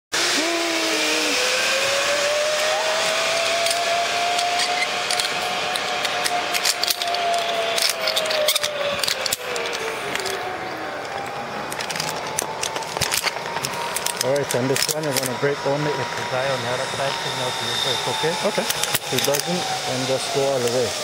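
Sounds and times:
pulleys whirring along cable: 0:00.2 - 0:21.0.

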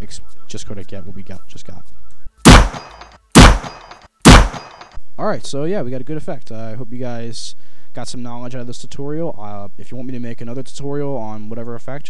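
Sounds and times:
handgun gunshots: 0:02.5 - 0:04.9.

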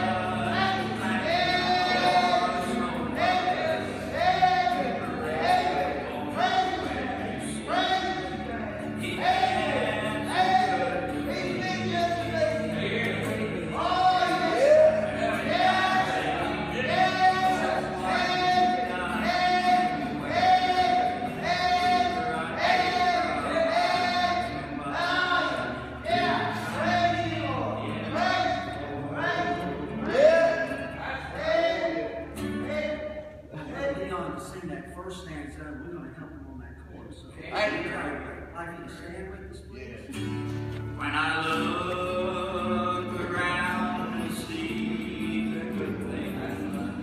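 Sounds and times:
man singing gospel: 0:00.0 - 0:35.6, 0:40.8 - 0:47.0
acoustic guitar: 0:00.0 - 0:47.0.

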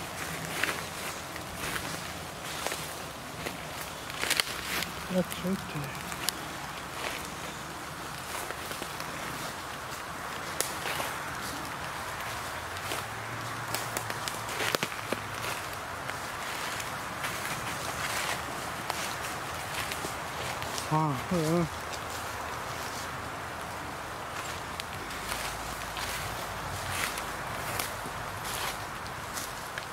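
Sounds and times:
footsteps on dry leaves: 0:00.0 - 0:29.9
steady background hiss: 0:00.0 - 0:29.9.

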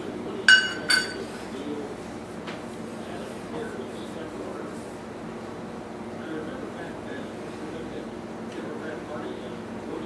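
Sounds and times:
kitchenware clinking together: 0:00.5 - 0:01.3.

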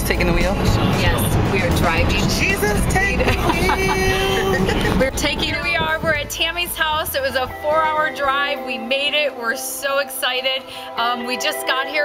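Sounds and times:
car road noise: 0:00.0 - 0:08.1.

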